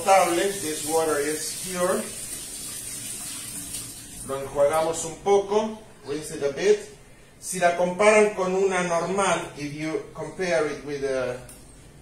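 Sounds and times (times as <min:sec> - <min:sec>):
kitchen tap running into strainer: 0:00.0 - 0:04.3.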